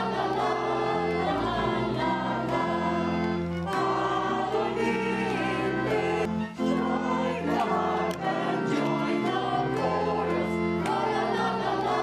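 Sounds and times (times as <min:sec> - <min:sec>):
choir singing held notes: 0:00.0 - 0:12.0
instrumental accompaniment: 0:00.0 - 0:12.0.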